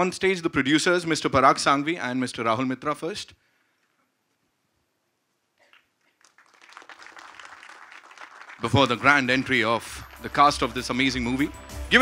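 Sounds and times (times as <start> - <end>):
audience applause: 5.7 - 11.0.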